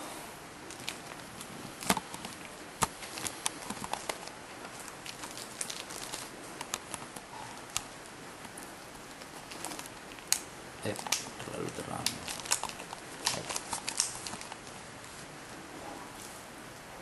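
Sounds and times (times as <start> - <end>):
sharp clicks and crinkling crackles: 0.6 - 15.2.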